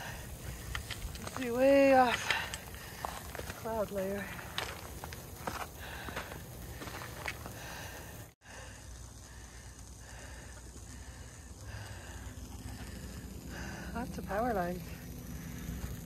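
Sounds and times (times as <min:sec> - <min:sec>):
power lines buzzing and hissing: 0:00.0 - 0:16.0.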